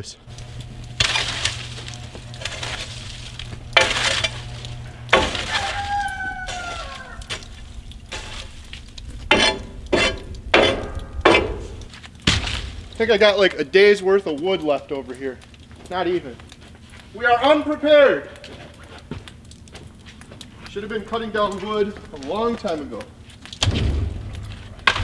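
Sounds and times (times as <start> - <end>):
low hum: 0.0 - 13.6
fire hissing: 0.0 - 25.0
metallic scrape: 0.4 - 11.9
logs knocking on steel box: 9.2 - 12.7.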